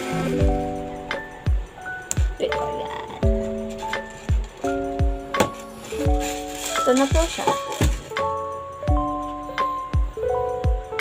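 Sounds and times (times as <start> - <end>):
deep drum beat: 0.3 - 6.3, 7.1 - 8.3.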